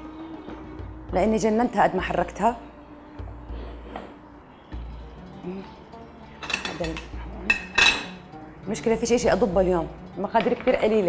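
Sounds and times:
soft background music: 0.0s - 11.0s
utensils clinking against metal cookware: 6.4s - 8.2s.

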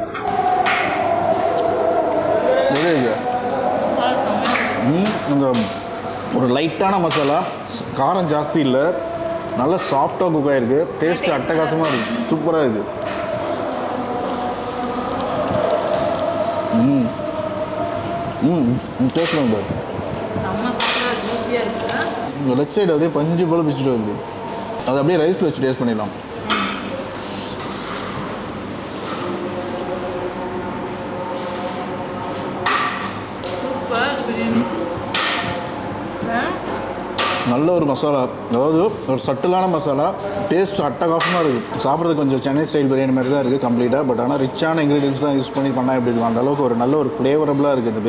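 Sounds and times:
restaurant room hum: 0.0s - 48.0s.

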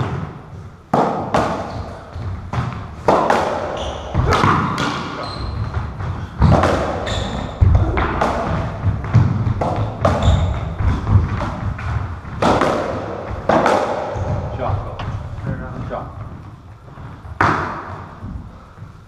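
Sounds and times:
racquetball ball impacts: 0.0s - 19.0s.

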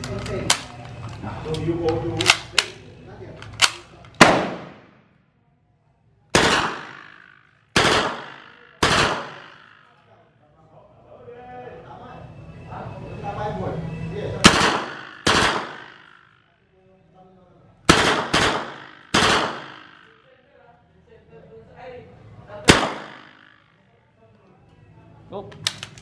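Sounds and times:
submachine gun single shots: 3.6s - 5.0s, 6.4s - 9.7s, 14.4s - 16.1s, 17.9s - 20.1s, 22.7s - 23.4s
gunshot echo: 4.2s - 5.0s, 6.4s - 9.8s, 14.4s - 16.2s, 17.9s - 20.1s, 22.7s - 23.6s.

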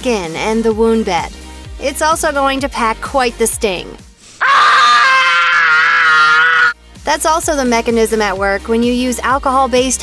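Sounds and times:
boy screaming: 4.4s - 6.8s.

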